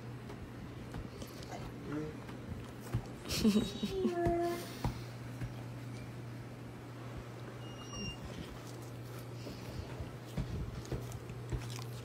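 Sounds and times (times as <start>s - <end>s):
steady low hum: 0.0s - 12.0s
dog whimpering softly: 7.6s - 8.8s.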